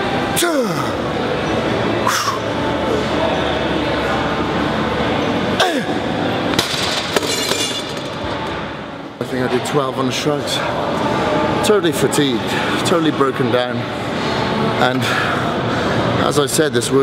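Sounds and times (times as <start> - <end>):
gym background noise: 0.0 - 17.0.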